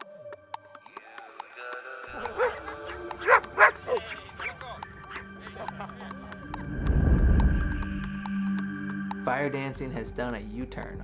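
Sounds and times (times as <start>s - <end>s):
music playing: 0.0s - 11.0s
small dog barking: 2.2s - 4.2s.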